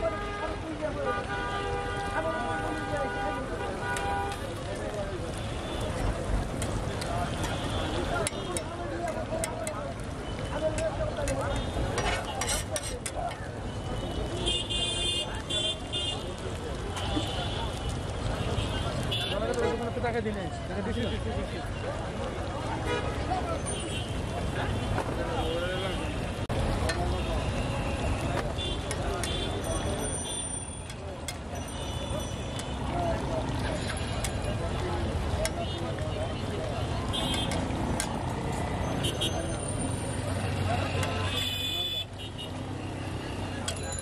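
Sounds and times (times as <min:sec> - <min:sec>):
street noise: 0:00.0 - 0:44.0
voices: 0:00.0 - 0:44.0
metal spatula scraping griddle: 0:11.2 - 0:13.4.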